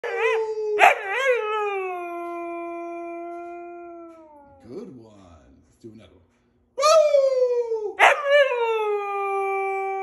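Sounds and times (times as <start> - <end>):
dog howling: 0.0 - 4.6, 7.9 - 10.0.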